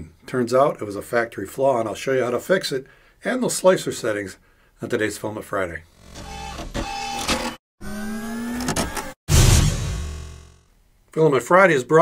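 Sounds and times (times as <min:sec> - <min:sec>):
stepper motors whirring: 0:06.0 - 0:10.6.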